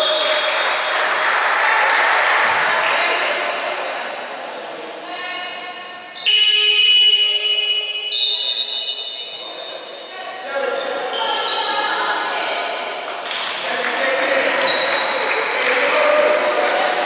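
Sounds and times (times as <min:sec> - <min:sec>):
murmur of voices: 0:00.0 - 0:06.2, 0:08.8 - 0:17.0
loud steady high tone: 0:05.7 - 0:10.0.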